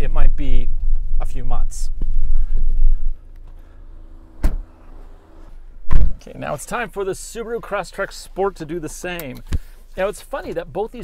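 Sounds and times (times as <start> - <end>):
faint steady hum: 0.0 - 11.0
short sharp knock: 5.9 - 6.2.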